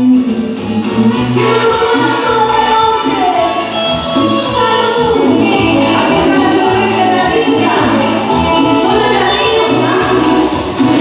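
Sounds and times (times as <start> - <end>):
cumbia band playing live: 0.0 - 11.0.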